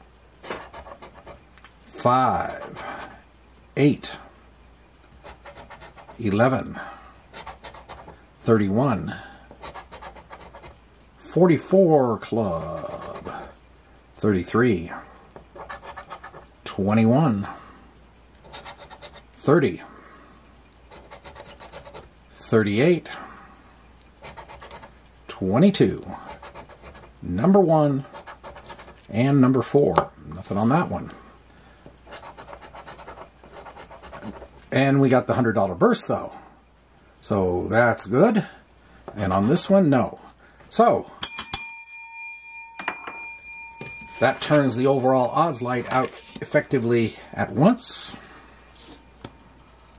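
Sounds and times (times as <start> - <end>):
scratcher scraping lottery ticket: 0.4 - 1.4, 5.2 - 6.4, 7.3 - 8.2, 9.6 - 10.8, 12.4 - 13.4, 15.5 - 16.5, 18.4 - 19.2, 20.9 - 22.1, 24.2 - 25.0, 26.2 - 27.2, 28.0 - 29.1, 32.1 - 34.5
metal coin ringing: 41.2 - 44.8.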